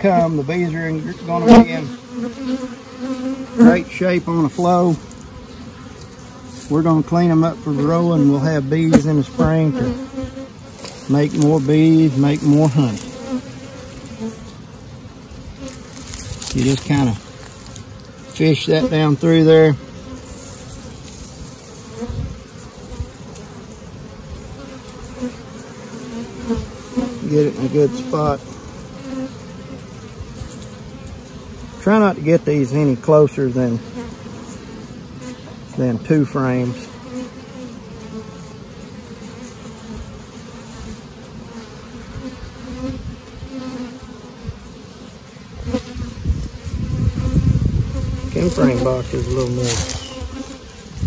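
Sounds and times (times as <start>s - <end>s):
bees buzzing: 0.0s - 51.0s.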